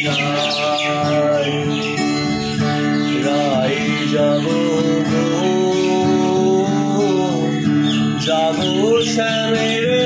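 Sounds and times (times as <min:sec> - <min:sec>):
acoustic guitar: 0:00.0 - 0:10.0
birds chirping: 0:00.0 - 0:10.0
man singing: 0:00.0 - 0:10.0.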